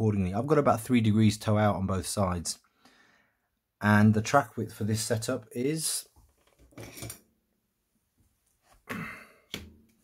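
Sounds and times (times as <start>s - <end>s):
handling noises on workbench: 6.2s - 7.2s.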